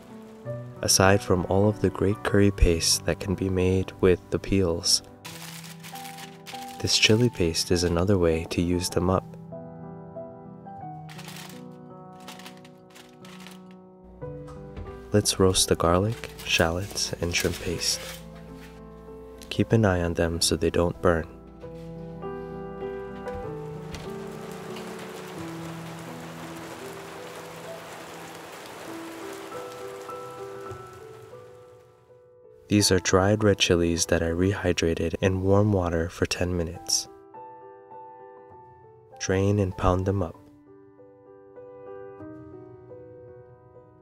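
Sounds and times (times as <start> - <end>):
steady rain patter: 0.0 - 1.8, 23.0 - 31.9
soft background music: 0.0 - 44.0
aluminium foil crinkling: 5.2 - 7.4, 11.1 - 13.8, 15.3 - 18.9, 23.0 - 31.2.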